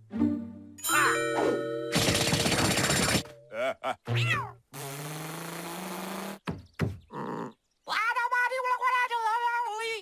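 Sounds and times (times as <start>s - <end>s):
cartoon cat cries: 4.1s - 4.6s
raspy cartoon cat voice: 4.1s - 4.6s.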